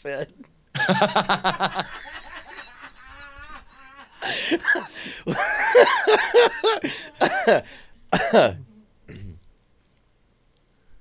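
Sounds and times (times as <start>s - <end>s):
man laughing hard: 0.8s - 8.6s.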